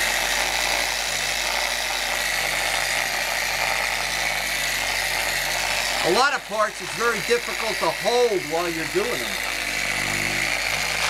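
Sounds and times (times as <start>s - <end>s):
electric polisher whine: 0.0s - 11.0s.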